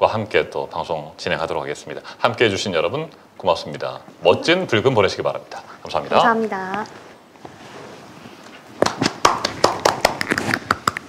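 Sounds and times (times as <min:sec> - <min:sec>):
people clapping hands: 0:08.8 - 0:11.0.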